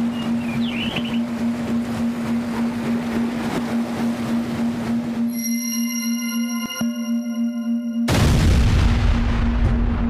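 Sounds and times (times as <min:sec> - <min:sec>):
waves washing: 0:00.0 - 0:06.2
low drone tone: 0:00.0 - 0:10.0.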